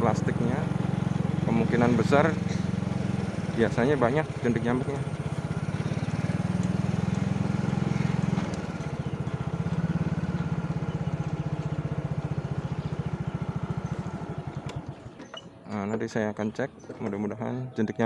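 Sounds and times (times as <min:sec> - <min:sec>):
small engine running: 0:00.0 - 0:17.3.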